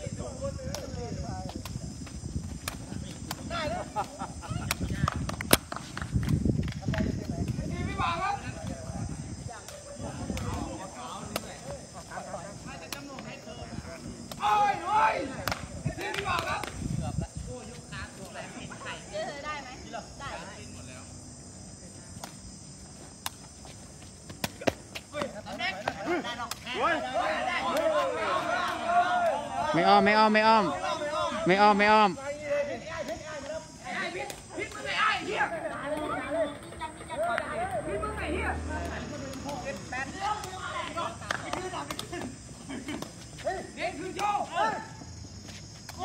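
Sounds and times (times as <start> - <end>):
crickets chirring: 0.0 - 46.0
players calling out: 24.5 - 45.0.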